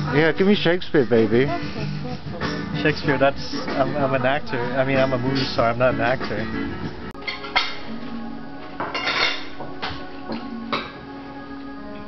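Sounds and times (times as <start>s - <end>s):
quiet background music: 0.0s - 12.0s
cutlery and dishes clinking: 7.2s - 7.9s, 8.8s - 11.0s.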